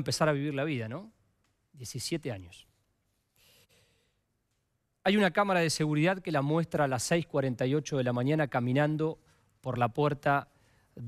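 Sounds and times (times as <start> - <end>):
man breathing faintly: 3.2 - 4.4.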